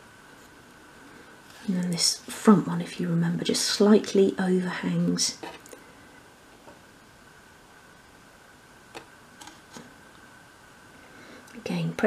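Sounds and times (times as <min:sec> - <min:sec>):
faint high-pitched hum: 0:00.0 - 0:12.0
woman speaking: 0:01.6 - 0:05.5, 0:11.5 - 0:12.0.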